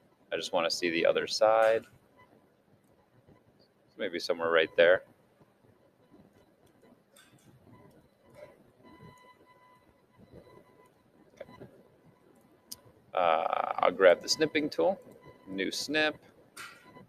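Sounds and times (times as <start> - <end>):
faint high hum: 0.0 - 17.0.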